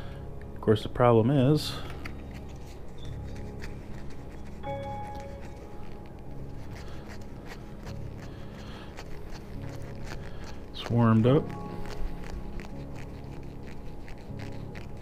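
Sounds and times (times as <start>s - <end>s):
soft background music: 0.0s - 15.0s
foil wrapper crinkling: 1.8s - 15.0s.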